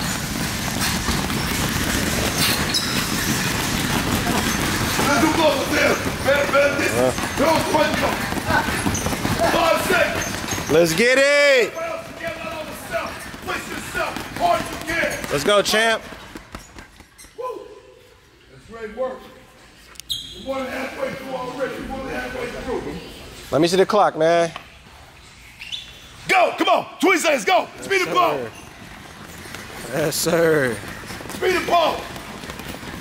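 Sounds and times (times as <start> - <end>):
punches thudding on heavy bags: 0.0 - 10.9, 11.8 - 16.5.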